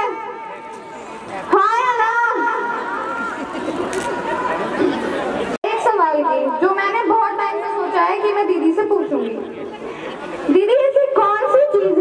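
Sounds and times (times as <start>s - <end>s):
voices talking and chattering: 0.0s - 12.0s.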